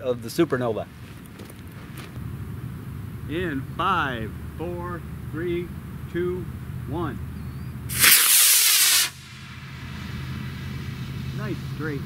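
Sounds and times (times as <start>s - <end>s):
rocket motor rushing hiss: 7.9s - 12.0s.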